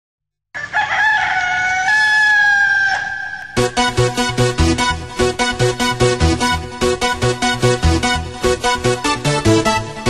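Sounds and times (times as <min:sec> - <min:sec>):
rooster crow: 0:00.5 - 0:03.7.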